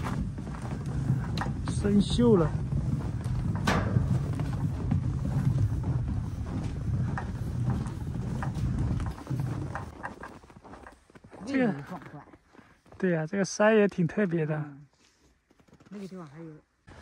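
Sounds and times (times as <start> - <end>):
footsteps crunching on snow: 0.0 - 13.4.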